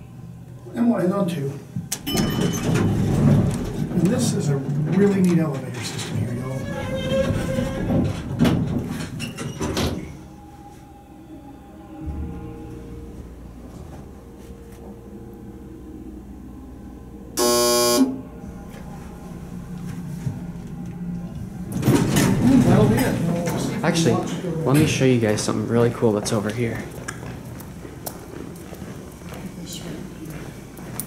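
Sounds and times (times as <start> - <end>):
elevator low hum: 0.0 - 26.2
elevator door noise: 1.8 - 10.6, 17.4 - 25.5
loud electronic beep: 17.4 - 18.2.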